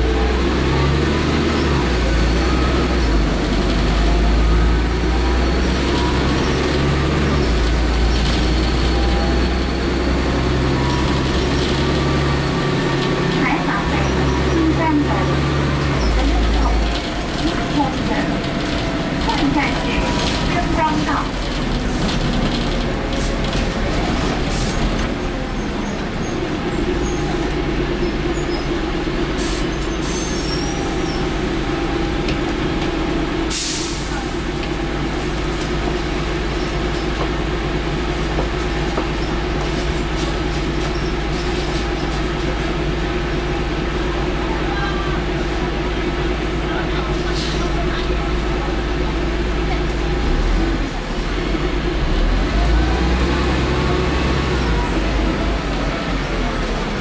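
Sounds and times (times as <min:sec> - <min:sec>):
bus diesel engine running: 0:00.0 - 0:57.0.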